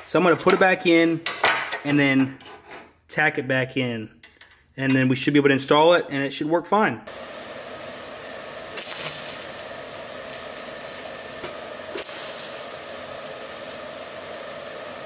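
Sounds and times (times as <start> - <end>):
welder hum: 7.1 - 15.0
welding arc hiss: 7.1 - 15.0.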